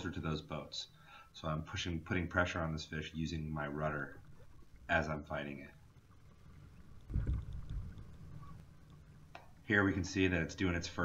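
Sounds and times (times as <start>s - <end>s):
low rumble of water and wind: 1.5s - 11.0s.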